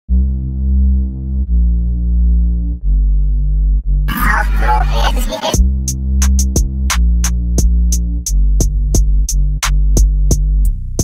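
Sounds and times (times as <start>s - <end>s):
deep synth bass notes: 0.1s - 11.0s.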